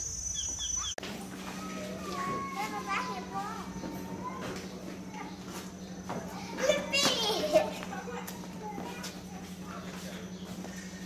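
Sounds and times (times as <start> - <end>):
people talking: 1.2 - 10.8
child shouting: 1.5 - 4.5, 6.4 - 9.2.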